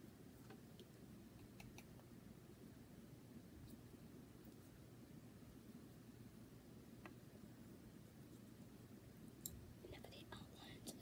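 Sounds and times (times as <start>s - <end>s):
faint small clicks: 0.4s - 2.1s.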